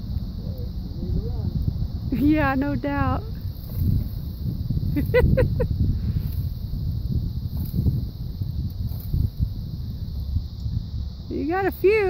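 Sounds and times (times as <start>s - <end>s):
wind on microphone: 0.0s - 12.0s
branches rustling: 1.6s - 11.2s
person laughing: 4.9s - 5.8s.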